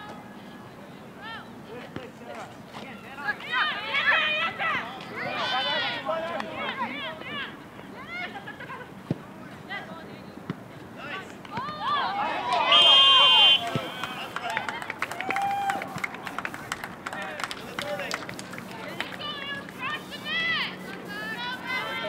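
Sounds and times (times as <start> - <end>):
players shouting calls: 2.8 - 8.2, 11.0 - 22.0
referee's whistle: 12.6 - 14.3
ball being kicked: 13.6 - 14.0.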